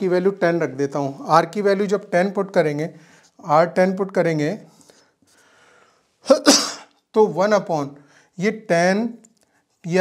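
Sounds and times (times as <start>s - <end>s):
man sneezing: 6.2s - 7.0s.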